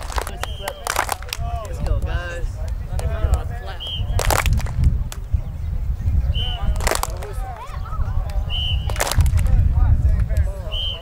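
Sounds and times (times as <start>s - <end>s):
wind rumble on microphone: 0.0s - 11.0s
faint children's voices: 5.3s - 8.6s.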